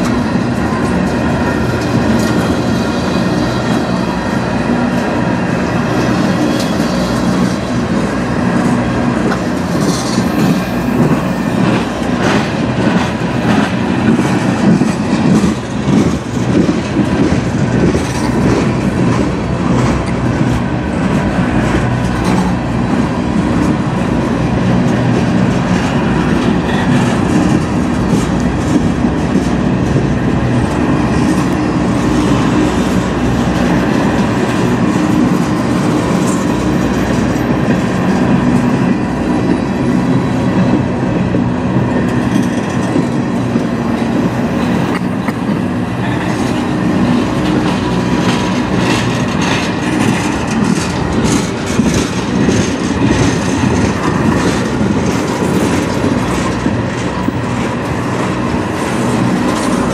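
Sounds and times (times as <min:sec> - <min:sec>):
train wheels rumbling on rail: 0:00.0 - 0:59.9
wheels clicking over rail joints: 0:00.0 - 0:59.9.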